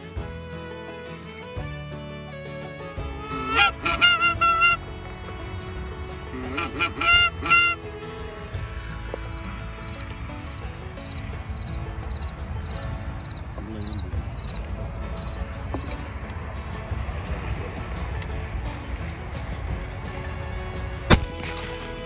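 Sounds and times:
geese honking: 3.0s - 13.4s.

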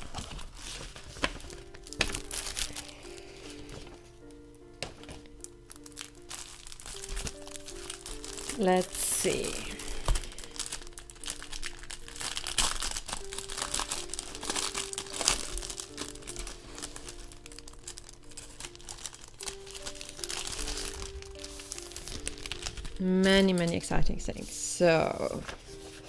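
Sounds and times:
plastic wrapping crinkling: 0.0s - 26.0s
soft background music: 0.0s - 26.0s.

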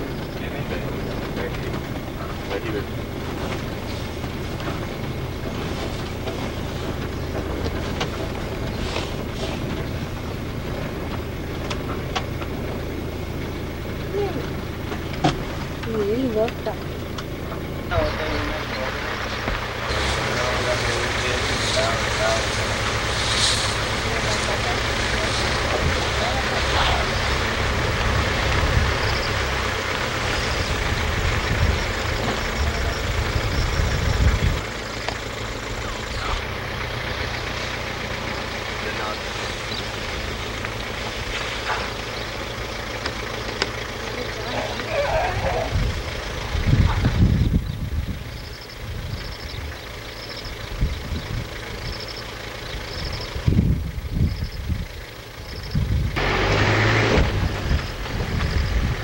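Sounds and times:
faint voices: 0.0s - 12.5s, 13.8s - 15.1s, 15.7s - 40.9s, 41.6s - 47.3s
vehicle engine running: 0.0s - 59.0s.

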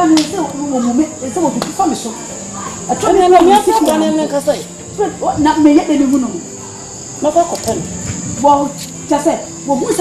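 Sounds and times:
insect chirring: 0.0s - 10.0s.

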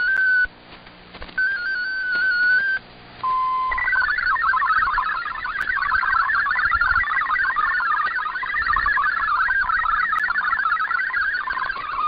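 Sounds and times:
warbling multi-tone data signal: 0.0s - 0.5s, 1.4s - 12.0s
steady tone: 1.4s - 12.0s
stepping-tone bursts: 1.4s - 12.0s
radio hiss: 2.1s - 12.0s.

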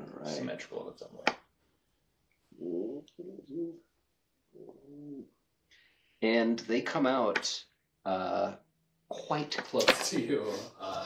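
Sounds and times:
person speaking a drawn-out word: 0.0s - 1.0s, 9.1s - 11.0s.

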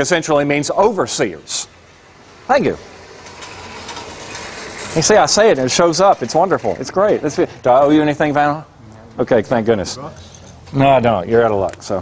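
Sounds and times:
board rattling and scraping: 2.8s - 8.2s.

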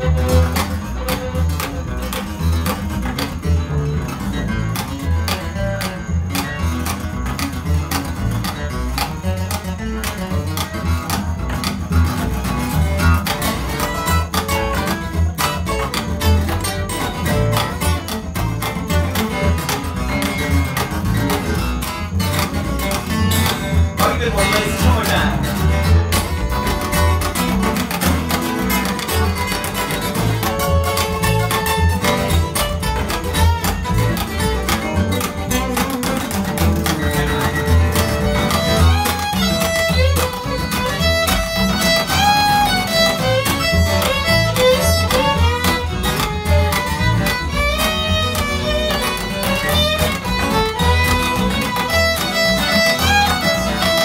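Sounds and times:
acoustic guitar lead: 0.0s - 54.0s
plucked upright bass: 0.0s - 54.0s.

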